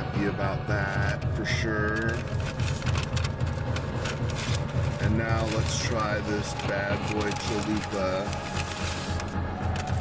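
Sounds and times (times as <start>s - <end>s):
car engine idling: 0.2s - 10.0s
paper wrapper crinkling: 0.8s - 10.0s.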